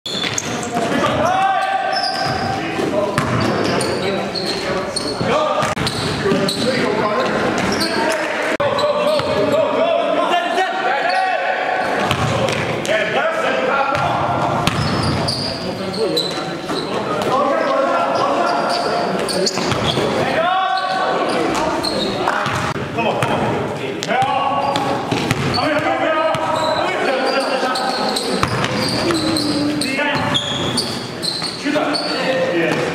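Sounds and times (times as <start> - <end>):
players shouting: 0.9 - 2.7, 7.7 - 15.4
basketball bouncing on gym floor: 3.2 - 3.6, 12.0 - 12.7, 13.9 - 15.3, 22.4 - 26.6, 28.4 - 29.4.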